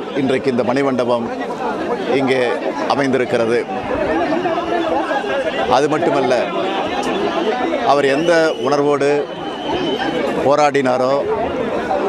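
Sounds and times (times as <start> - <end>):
crowd chatter: 0.0 - 12.0
man speaking: 2.1 - 3.7, 5.6 - 6.6.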